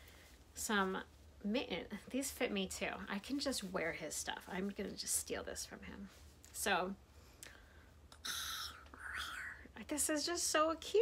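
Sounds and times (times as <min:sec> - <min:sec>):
woman speaking: 0:00.6 - 0:07.0, 0:09.0 - 0:11.0
woman whispering: 0:08.2 - 0:10.0.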